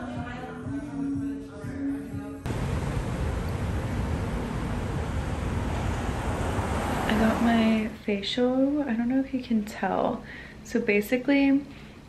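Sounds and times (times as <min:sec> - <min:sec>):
background music: 0:00.0 - 0:02.5
city street traffic rumble: 0:02.5 - 0:08.0.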